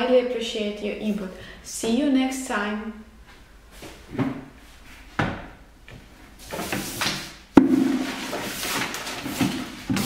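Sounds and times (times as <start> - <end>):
papers rustling: 6.4 - 10.0
sharp knocks: 7.6 - 8.2.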